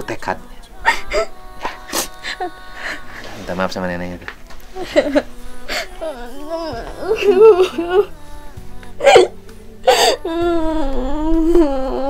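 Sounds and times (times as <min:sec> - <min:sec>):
gasping breaths: 0:00.8 - 0:03.3, 0:04.7 - 0:07.0
girl sobbing: 0:00.8 - 0:03.3, 0:04.7 - 0:12.0
girl wailing: 0:04.8 - 0:08.2, 0:09.9 - 0:12.0.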